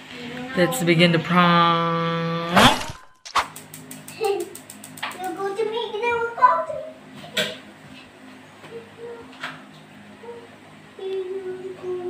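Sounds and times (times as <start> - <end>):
brief loud burst: 2.5 - 3.5
sharp click: 2.6 - 5.3.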